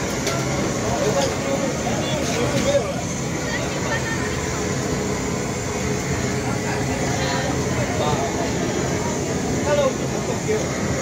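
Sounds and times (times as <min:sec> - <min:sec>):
people's voices: 0:00.0 - 0:11.0
steady rushing noise: 0:00.0 - 0:11.0.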